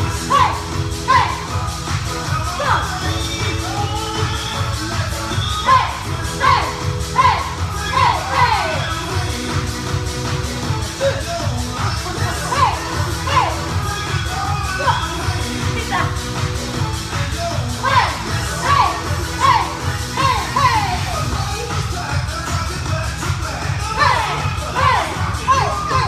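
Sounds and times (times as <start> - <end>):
workout music with thumping beat: 0.0 - 26.0
people shouting: 0.2 - 1.5, 5.6 - 8.9, 12.3 - 13.7, 17.8 - 21.2, 23.9 - 26.0.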